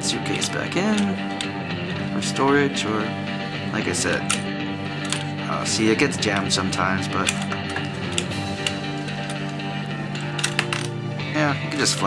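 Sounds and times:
guitar music: 0.0s - 12.0s
sharp plastic clicks: 7.1s - 9.6s.

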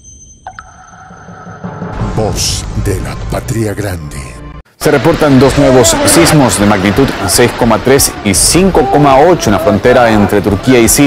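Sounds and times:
high electronic tones: 0.0s - 2.0s.

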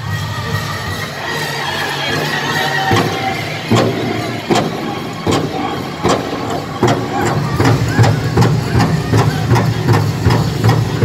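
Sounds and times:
crowd noise: 0.0s - 11.0s
heavy drumbeats: 0.0s - 11.0s
singers high-pitched singing: 0.0s - 11.0s.

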